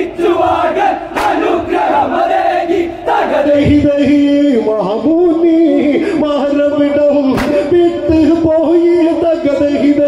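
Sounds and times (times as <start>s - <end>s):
men chanting in unison: 0.0s - 4.4s
sharp hand clap: 1.2s - 1.4s.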